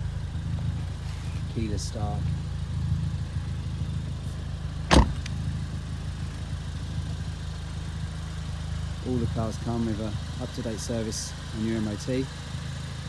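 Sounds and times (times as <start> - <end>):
car engine idling: 0.0 - 13.0
sharp knock: 4.9 - 5.2.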